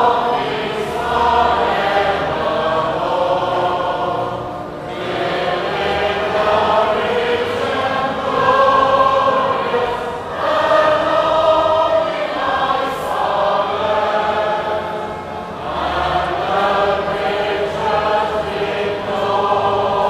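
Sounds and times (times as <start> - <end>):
many voices singing a hymn: 0.0 - 20.0.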